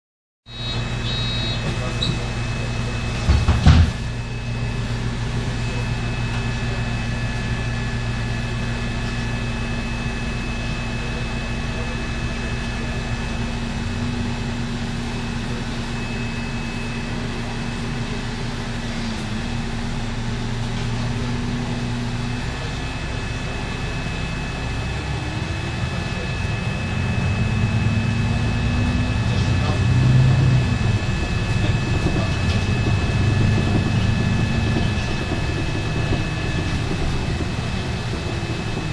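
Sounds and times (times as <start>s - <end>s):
faint high whine: 0.5s - 13.0s
bus engine humming: 0.5s - 38.9s
loud knock: 3.2s - 4.0s.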